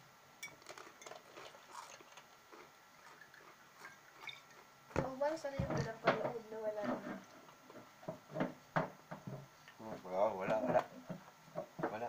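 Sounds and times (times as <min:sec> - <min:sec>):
glass bottle and shot glass clinking: 0:03.8 - 0:04.5.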